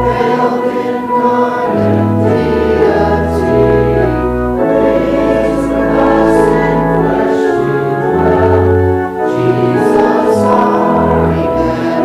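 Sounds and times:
congregation singing a hymn: 0.0s - 12.0s
organ accompaniment: 0.0s - 12.0s.

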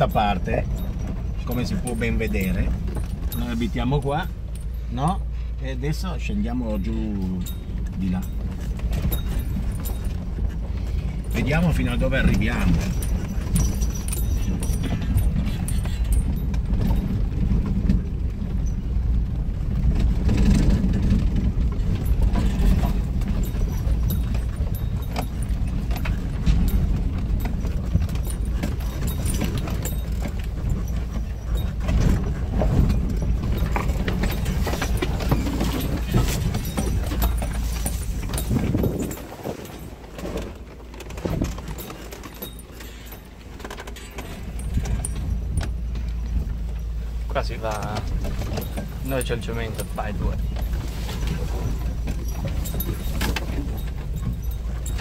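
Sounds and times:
body rattling over bumps: 0.0s - 55.0s
van engine rumble: 0.0s - 55.0s.

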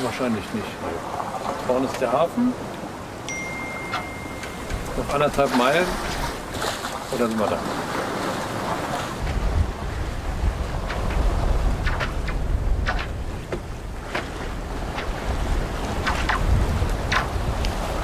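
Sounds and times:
water rushing along hull: 0.0s - 18.0s
waves splashing against hull: 0.0s - 18.0s
wind buffeting microphone: 4.3s - 18.0s.

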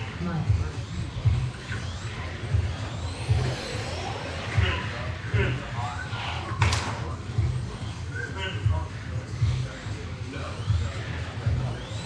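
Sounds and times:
rc car motor whine: 0.0s - 8.4s, 9.2s - 12.0s
voices in a large hall: 0.0s - 12.0s.

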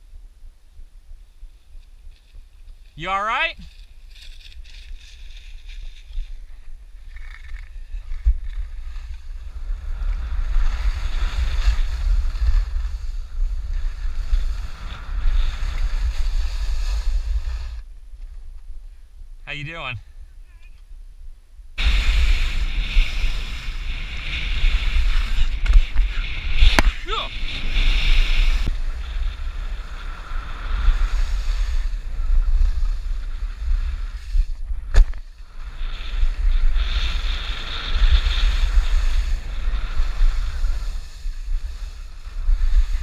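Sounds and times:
skis scraping over snow: 1.8s - 17.8s, 21.8s - 43.0s
wind buffeting microphone: 21.2s - 43.0s.

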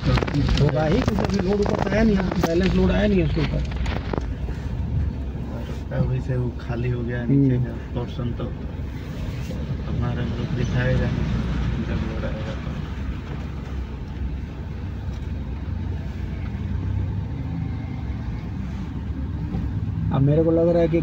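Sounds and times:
car engine rumble: 0.0s - 21.0s
tyres on muddy road: 0.0s - 21.0s.

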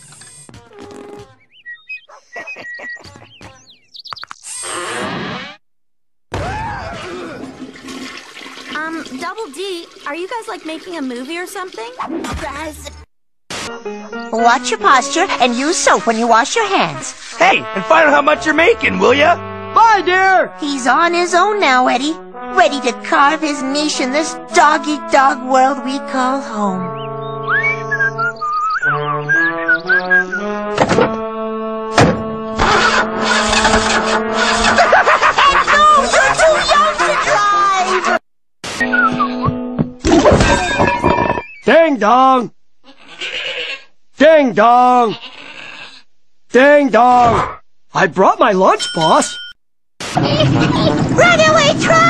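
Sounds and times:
cartoon water rushing: 6.6s - 12.4s
car door thunks: 32.0s - 32.3s
cartoon car engine starting: 32.6s - 35.0s.

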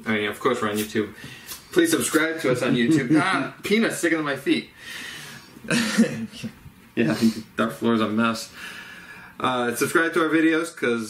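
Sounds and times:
man laughing: 2.4s - 3.5s, 5.7s - 7.4s.

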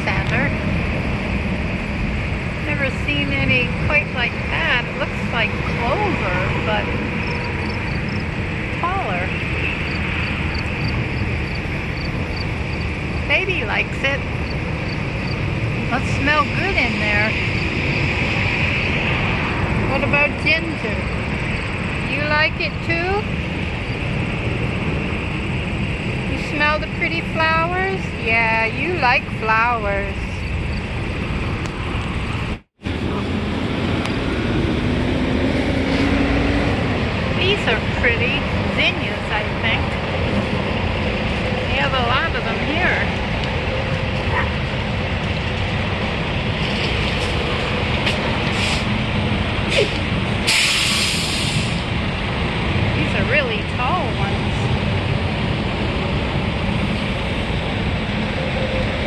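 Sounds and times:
low rumble of vehicles: 0.0s - 59.0s
road traffic noise: 0.0s - 59.0s
loud hiss: 49.7s - 52.0s.

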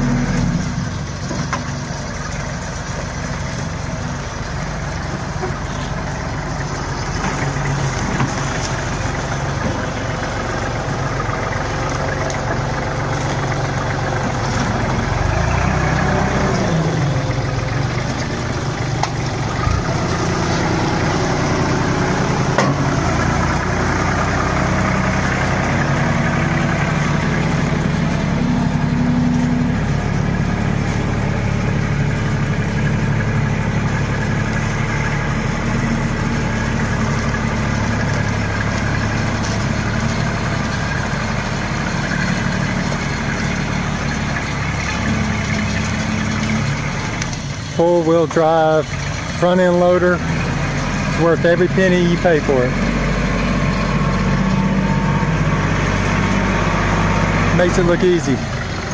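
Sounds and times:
tractor engine running: 0.0s - 58.9s.

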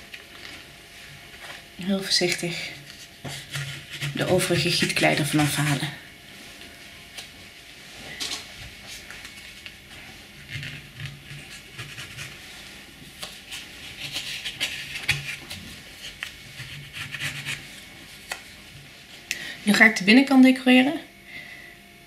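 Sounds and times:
scraping plaster mould: 3.2s - 5.9s.

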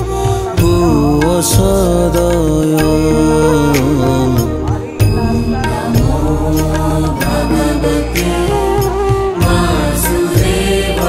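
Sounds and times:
chanted vocals: 0.0s - 11.0s
low drone: 0.0s - 11.0s
percussive strikes: 0.2s - 11.0s.

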